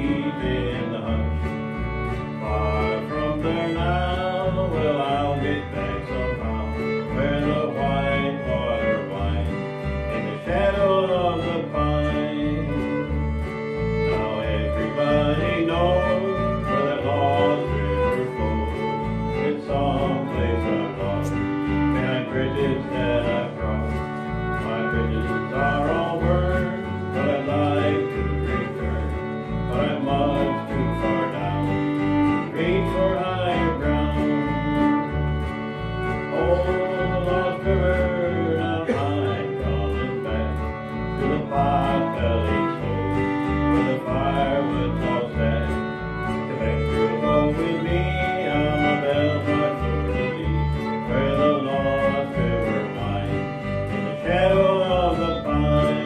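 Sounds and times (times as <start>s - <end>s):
fiddle with sliding notes: 0.0s - 56.0s
strummed acoustic guitars: 0.0s - 56.0s.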